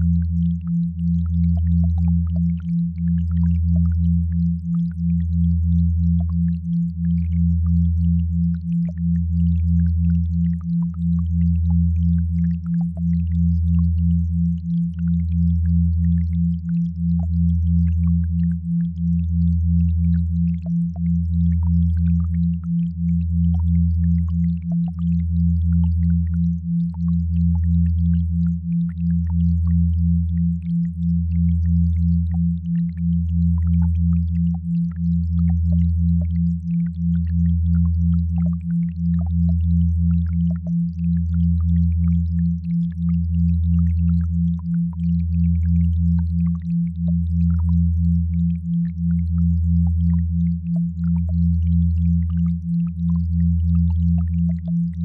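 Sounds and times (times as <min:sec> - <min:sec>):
deep steady hum: 0:00.0 - 0:55.0.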